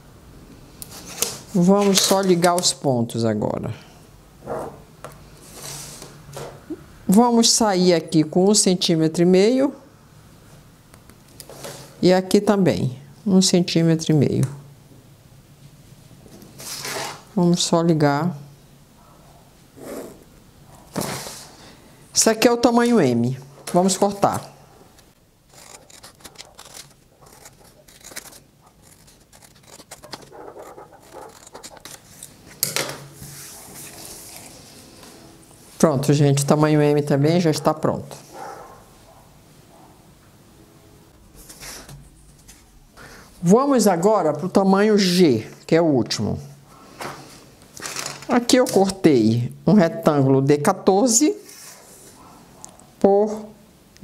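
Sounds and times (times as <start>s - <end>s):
paper rustling: 0.9s - 2.7s, 16.6s - 17.3s, 25.5s - 35.2s, 47.7s - 49.0s
pen scratching along ruler: 25.5s - 32.3s
scissors snipping paper: 25.5s - 32.3s.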